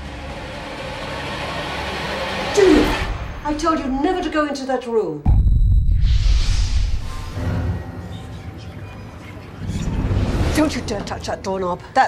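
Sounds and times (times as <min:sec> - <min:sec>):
rushing noise riser: 0:05.3 - 0:07.8.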